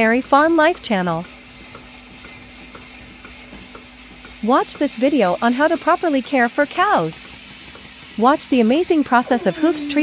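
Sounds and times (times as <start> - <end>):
vacuum hiss: 1.9 - 10.0.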